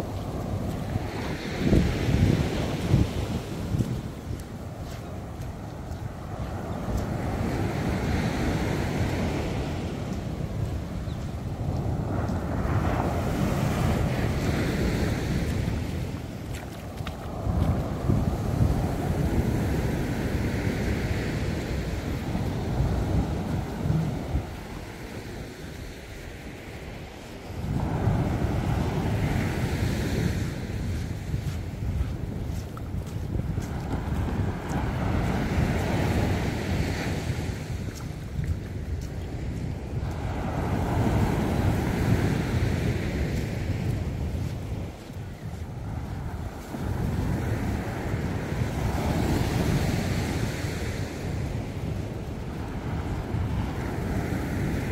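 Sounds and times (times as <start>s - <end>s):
small waves breaking on beach: 0.0s - 54.9s
wind buffeting microphone: 0.0s - 54.9s.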